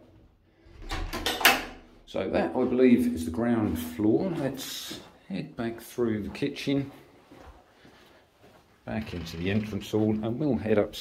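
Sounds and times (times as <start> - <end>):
iron latch clicking: 0.8 - 1.8.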